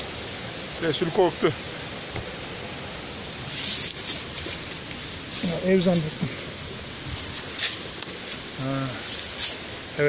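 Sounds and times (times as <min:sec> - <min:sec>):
creek water rushing: 0:00.0 - 0:10.0
short rustle: 0:03.4 - 0:09.8.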